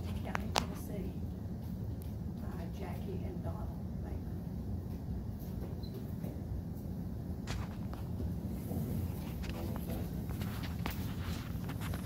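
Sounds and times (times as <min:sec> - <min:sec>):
footsteps in a room: 0:00.0 - 0:12.0
steady low hum: 0:00.0 - 0:12.0.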